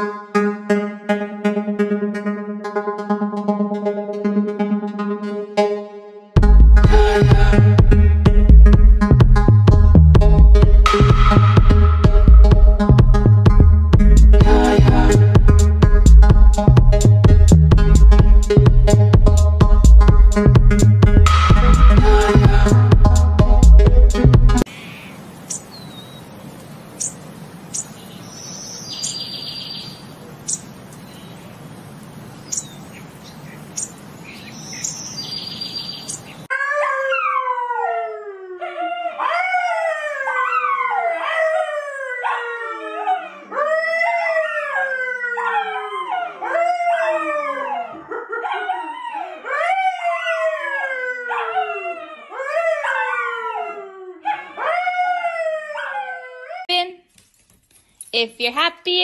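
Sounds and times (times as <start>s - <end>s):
faint steady hiss: 24.7s - 36.5s
dog howling: 36.5s - 56.7s.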